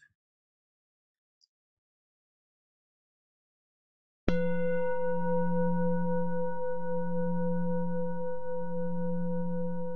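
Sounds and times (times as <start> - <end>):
singing bowl ringing: 4.3 - 9.9.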